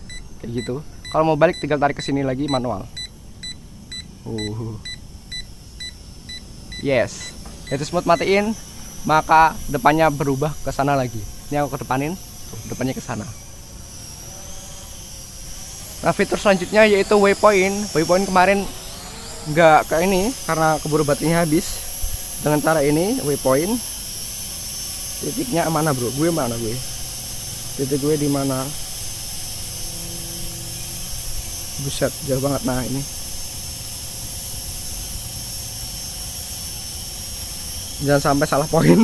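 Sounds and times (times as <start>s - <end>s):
drone motors whining: 0.0s - 39.0s.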